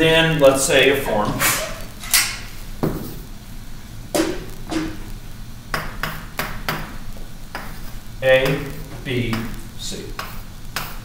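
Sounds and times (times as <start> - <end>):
sharp taps writing on board: 5.7 - 6.9, 7.5 - 7.8, 10.2 - 11.0.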